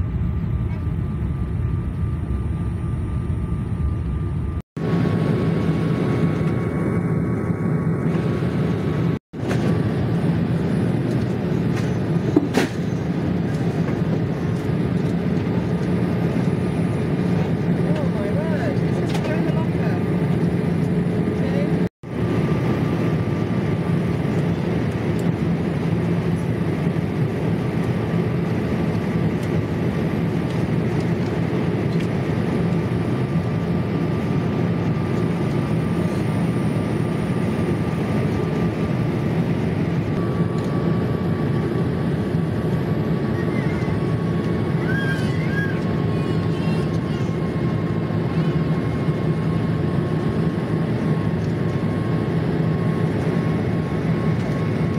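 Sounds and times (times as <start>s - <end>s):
jet engines roaring: 0.0s - 54.9s.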